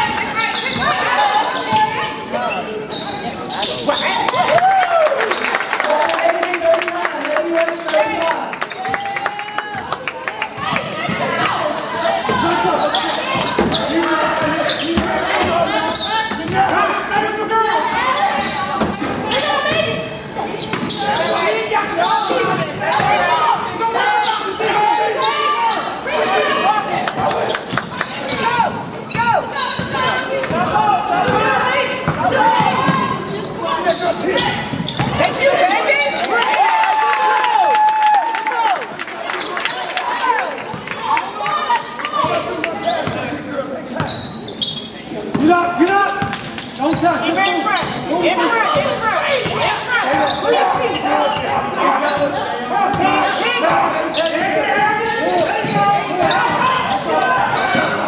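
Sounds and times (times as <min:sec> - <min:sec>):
players shouting: 0:00.0 - 0:44.1, 0:45.0 - 0:58.0.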